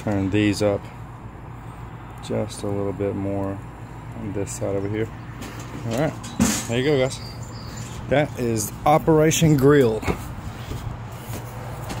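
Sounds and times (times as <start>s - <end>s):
footsteps on wooden boards: 10.0s - 12.0s.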